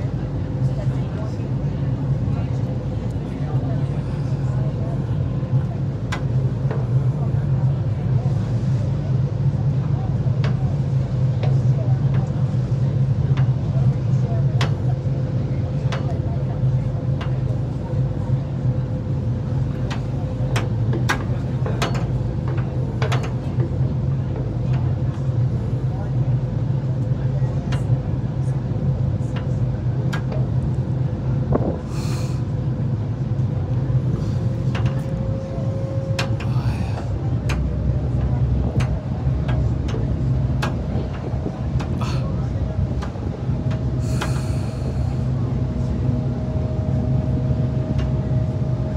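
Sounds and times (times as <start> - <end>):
boat engine running: 0.0 - 48.9.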